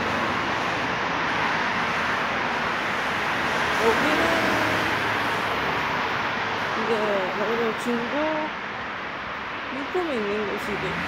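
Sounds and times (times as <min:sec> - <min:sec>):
cars rushing by: 0:00.0 - 0:11.0.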